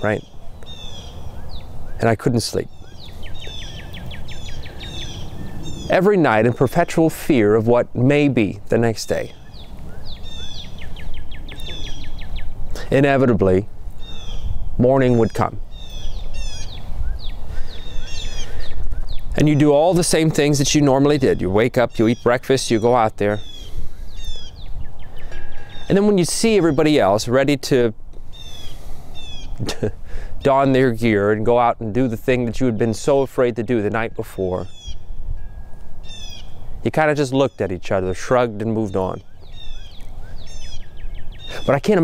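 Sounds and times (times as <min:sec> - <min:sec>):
wind rumble on microphone: 0:00.0 - 0:30.2, 0:30.9 - 0:37.0
songbird whistling: 0:00.1 - 0:02.0, 0:02.7 - 0:06.0, 0:09.3 - 0:12.6, 0:14.0 - 0:19.4, 0:22.0 - 0:26.0, 0:28.3 - 0:29.6, 0:34.6 - 0:36.6, 0:39.2 - 0:41.8.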